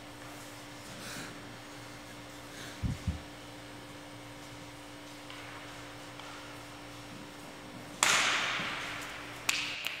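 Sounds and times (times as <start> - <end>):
stick cracking against puck: 7.9 - 10.0.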